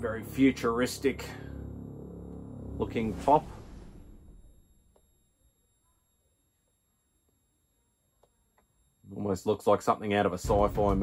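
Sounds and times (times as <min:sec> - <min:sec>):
faint high whines: 0:00.0 - 0:09.5.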